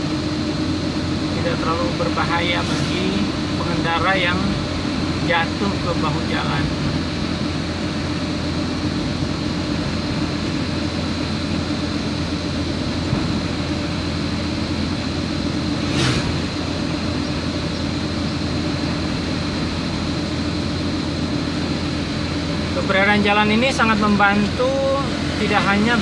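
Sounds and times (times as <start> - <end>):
vehicle engine and tyre noise: 0.0 - 26.0.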